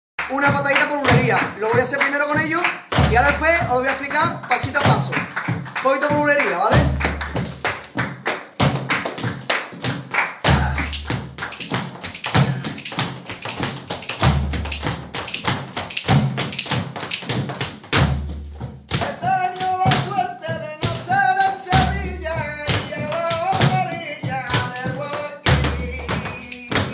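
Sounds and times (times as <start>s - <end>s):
flamenco music: 0.2s - 26.9s
rhythmic footwork and hand clapping: 0.2s - 26.9s
person singing: 19.0s - 26.9s.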